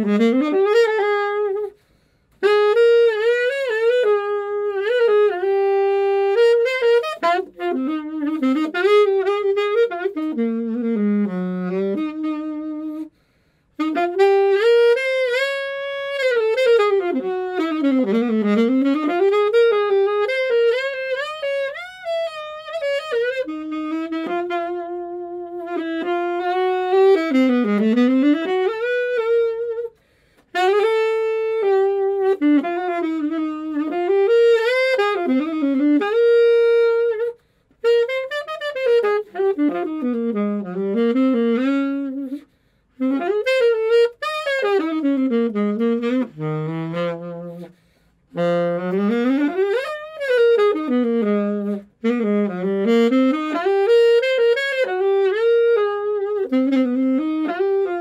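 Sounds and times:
alto saxophone jazz melody: 0.0 - 58.0.

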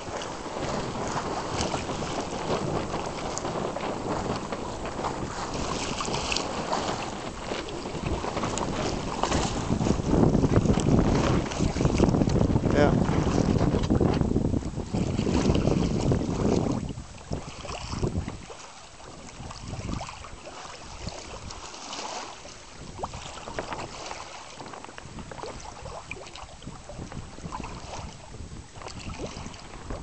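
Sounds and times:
water rushing along boat hull: 0.0 - 30.0
wind buffeting microphone: 0.0 - 30.0.

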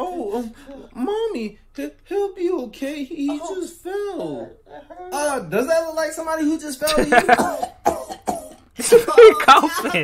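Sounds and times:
man coughing: 6.9 - 10.0.

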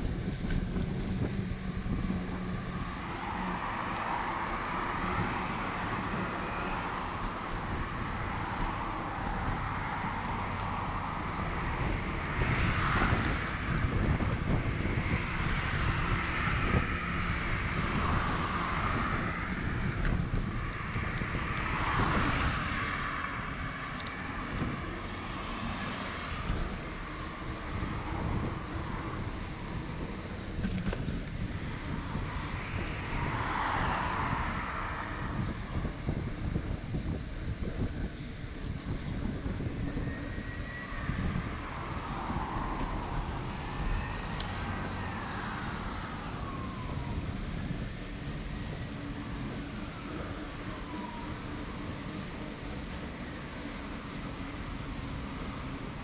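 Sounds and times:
cars passing: 0.0 - 56.0
wind noise on microphone: 0.0 - 56.0.

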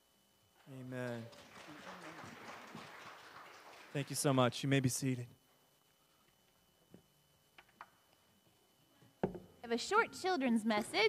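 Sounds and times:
congregation rustling and murmuring: 1.1 - 4.7.

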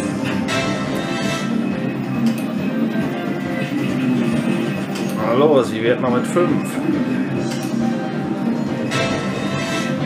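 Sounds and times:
looping slot machine music: 0.0 - 10.0.

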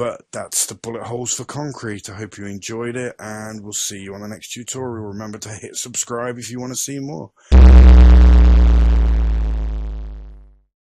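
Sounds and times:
deep hit with ringing chord: 7.5 - 10.4.

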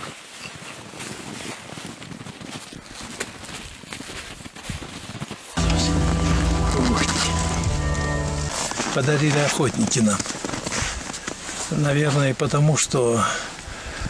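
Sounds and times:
background music with low bass: 5.6 - 8.6.

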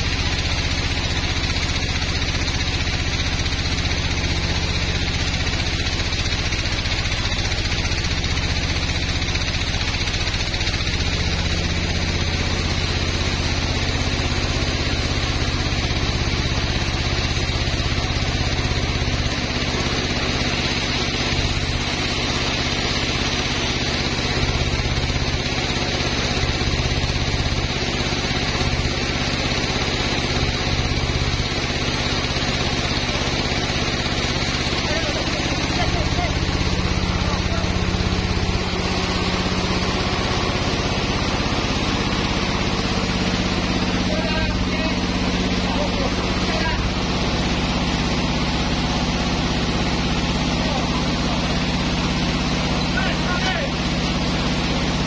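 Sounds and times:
band sawmill sawing log: 0.0 - 55.0.

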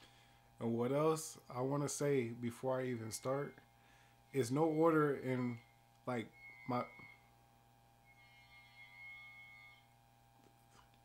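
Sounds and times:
low steady hum: 0.0 - 11.0
faint high-pitched tone: 0.6 - 10.3.

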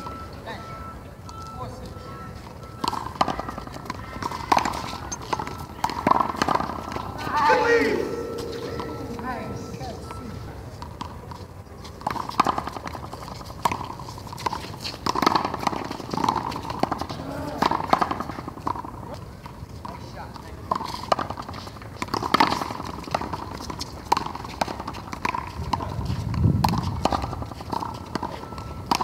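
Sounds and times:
player shouting: 7.2 - 9.5.

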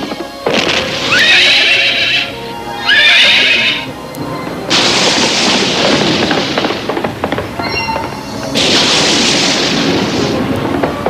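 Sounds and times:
background music: 0.0 - 11.0
steady rushing noise: 0.0 - 11.0
cartoon horse whinnying: 1.0 - 3.8.

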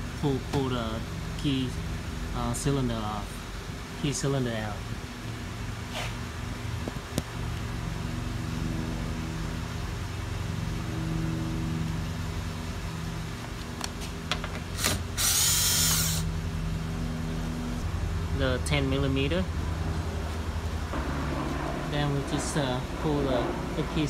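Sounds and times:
steady low hum: 0.0 - 24.0
cordless drill spinning: 14.8 - 16.3.

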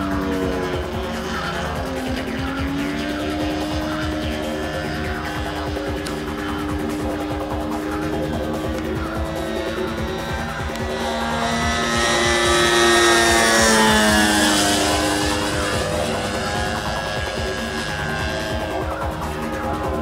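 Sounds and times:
model plane engine flying past: 0.0 - 20.0
music playing: 0.0 - 20.0.

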